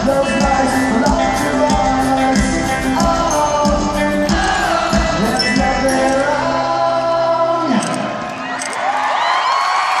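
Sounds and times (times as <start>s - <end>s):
crowd cheering and whooping: 8.2s - 10.0s.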